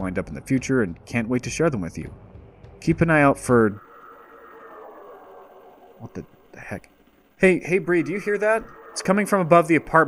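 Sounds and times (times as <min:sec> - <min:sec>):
high drone falling in pitch: 0:03.0 - 0:10.0.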